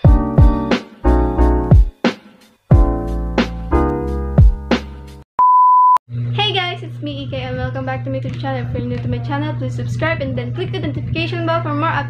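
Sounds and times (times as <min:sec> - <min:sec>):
music: 0:00.0 - 0:05.2
electronic beep: 0:05.4 - 0:06.0
young woman speaking: 0:06.3 - 0:12.0.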